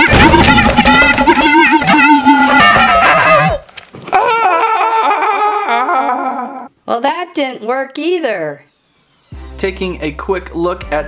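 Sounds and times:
man imitating dragon cry: 1.0s - 6.7s.

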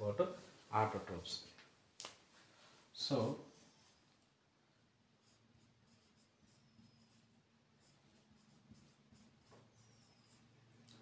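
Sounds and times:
pen scratching on paper: 5.1s - 11.0s.

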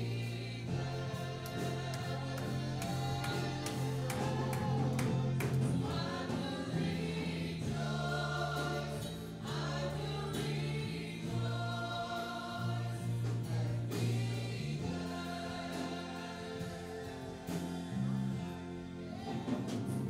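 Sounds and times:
guitars: 0.0s - 20.0s
sustained bass notes: 0.0s - 20.0s.

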